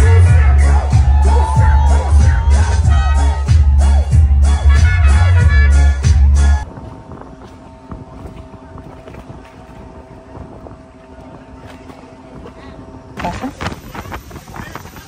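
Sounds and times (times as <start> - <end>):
boat machinery humming: 0.0 - 15.0
wind on microphone: 6.2 - 15.0.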